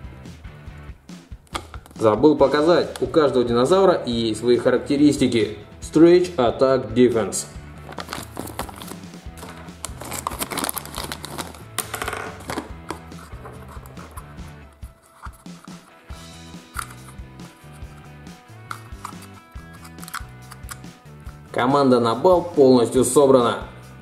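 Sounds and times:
music with repeating bass line: 16.1 - 21.5.

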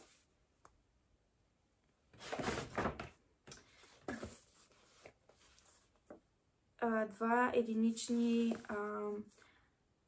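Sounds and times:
paper bag rustling and crinkling: 2.2 - 3.0.

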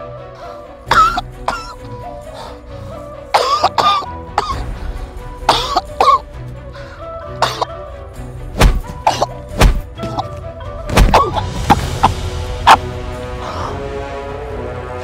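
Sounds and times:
background music: 0.0 - 15.0
man coughing and groaning: 0.8 - 1.8, 3.3 - 4.8, 5.5 - 6.4, 7.4 - 7.8, 9.0 - 10.3.

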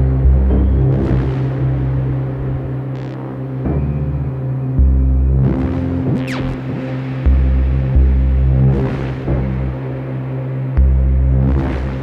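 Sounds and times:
deep bass notes: 0.0 - 12.0
sustained synth chord drone: 0.0 - 12.0.

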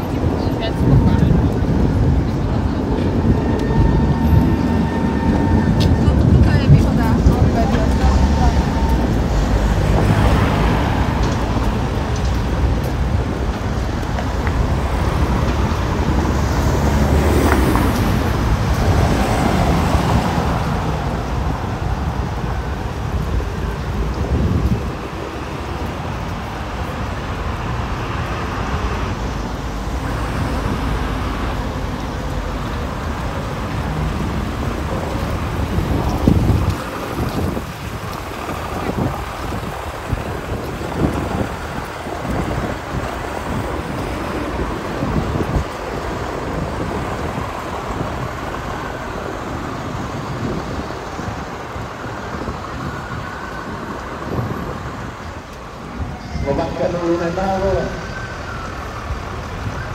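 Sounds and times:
cars passing on road: 0.0 - 59.9
wind rumble on microphone: 0.0 - 59.9.

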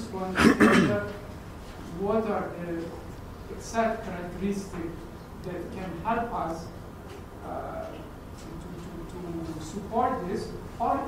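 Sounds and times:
person clearing throat: 0.4 - 1.2.

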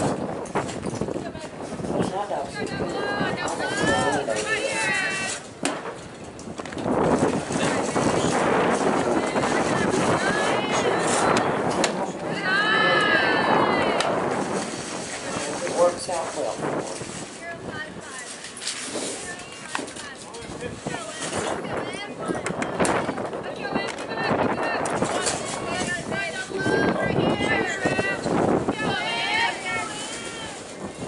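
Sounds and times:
chatter and shouts: 1.0 - 5.9, 7.1 - 31.0.

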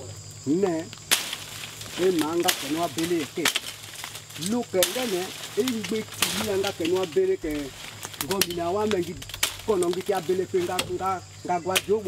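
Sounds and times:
bark cracking off tree trunk: 0.4 - 12.0
man speaking: 2.0 - 3.5, 4.4 - 12.0.

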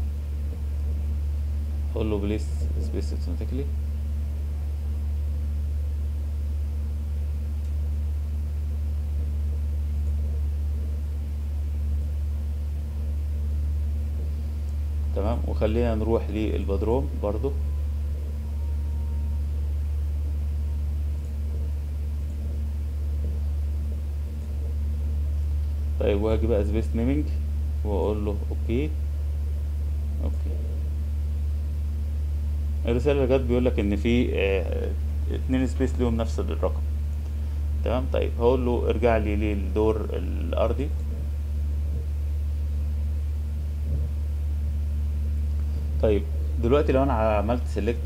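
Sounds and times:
low hum: 0.0 - 48.0.

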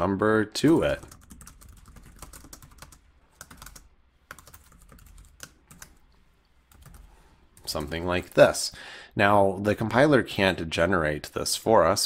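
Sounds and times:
computer keyboard typing: 0.7 - 6.0, 6.7 - 8.4.

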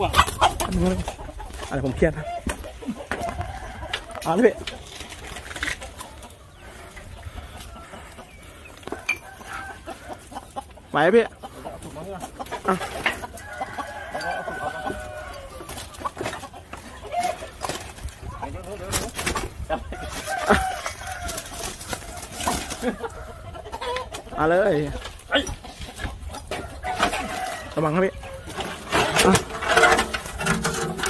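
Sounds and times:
chickens clucking: 0.0 - 31.0
rooster crowing: 13.4 - 15.7, 20.0 - 21.6, 26.6 - 28.8.

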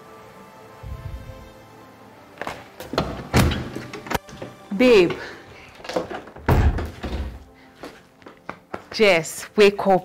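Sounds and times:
background music: 0.0 - 10.0
wooden door shutting with thud: 2.9 - 4.1, 5.9 - 7.4.

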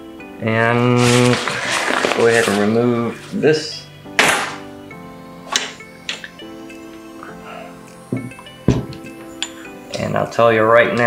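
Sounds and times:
soft background music: 0.0 - 11.0
tripod sliding out of bag: 1.0 - 3.4, 4.2 - 4.7
tripod thudding on wooden table: 4.2 - 4.6, 8.1 - 9.1.

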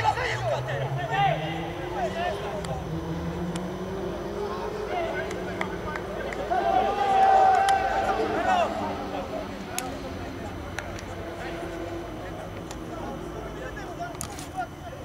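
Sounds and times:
men shouting: 0.0 - 3.0, 3.8 - 10.6.

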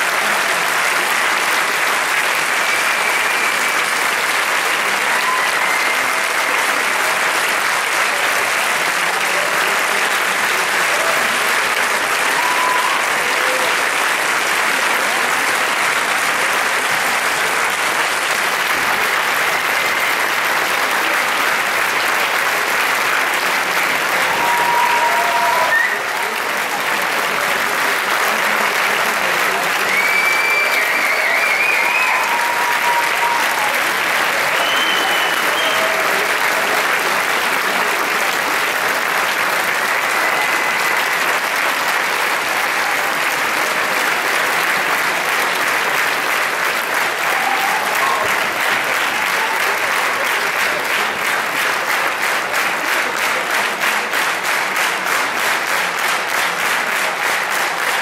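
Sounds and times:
audience cheering: 0.0 - 7.5, 10.8 - 15.3, 18.6 - 21.1, 23.4 - 26.8, 29.5 - 38.3, 39.7 - 44.0, 46.8 - 50.9
audience applauding: 0.0 - 58.0.

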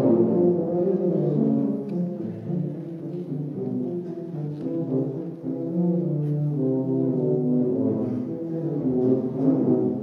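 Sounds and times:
tuba duet: 0.0 - 10.0.

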